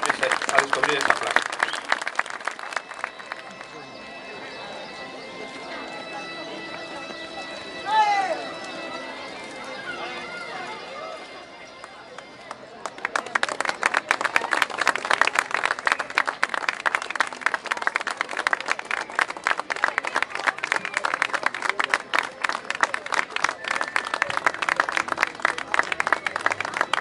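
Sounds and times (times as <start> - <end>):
crowd applause: 0.0 - 5.8, 9.8 - 27.0
crowd murmur: 0.0 - 27.0.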